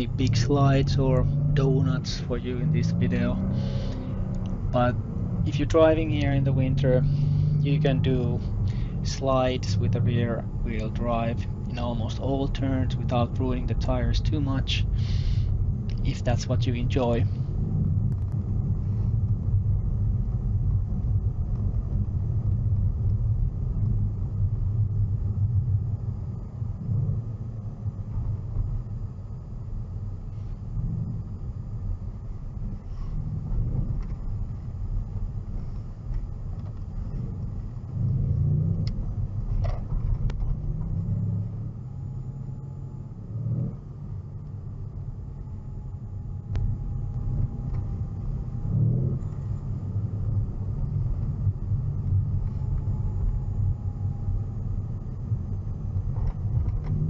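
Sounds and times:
car cabin road and engine rumble: 0:00.0 - 0:57.0.

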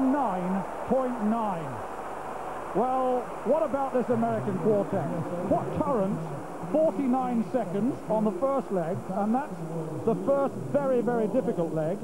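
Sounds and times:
sports commentator speaking: 0:00.0 - 0:01.8, 0:02.8 - 0:12.0
stadium crowd noise: 0:00.0 - 0:12.0.

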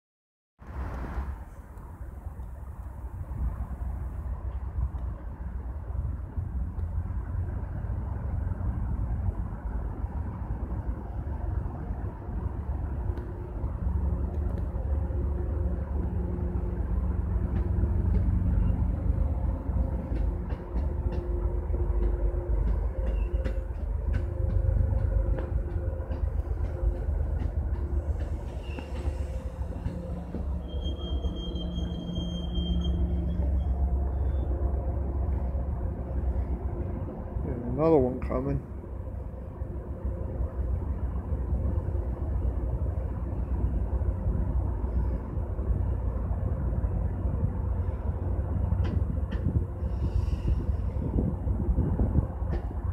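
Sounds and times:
train rumbling past: 0:00.6 - 0:52.9
high-pitched wheel squeal: 0:28.4 - 0:34.6.

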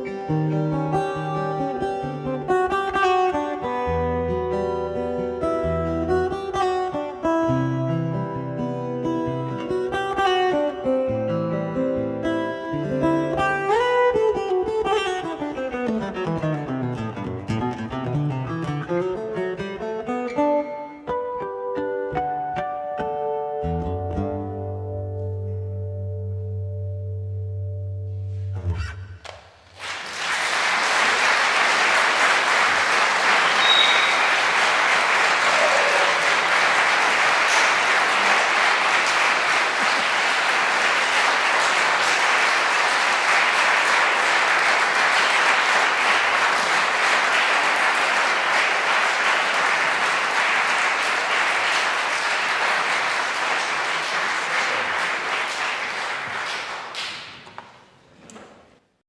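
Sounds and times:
audience applauding: 0:29.3 - 0:57.7.

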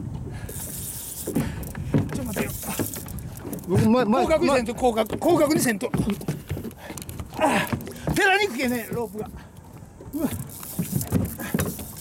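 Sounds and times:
water around a boat: 0:00.0 - 0:12.0
wind: 0:00.0 - 0:12.0
man speaking loudly: 0:03.7 - 0:06.0.

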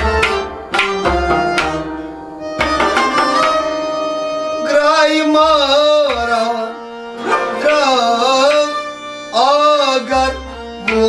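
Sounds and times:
held-note instrumental accompaniment: 0:00.0 - 0:11.0
man singing: 0:04.6 - 0:11.0.

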